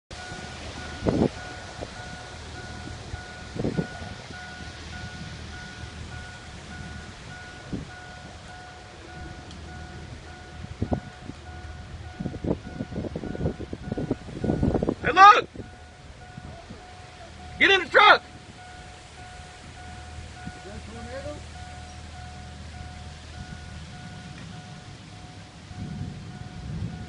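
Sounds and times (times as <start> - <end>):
wind rumble on microphone: 0.1 - 27.0.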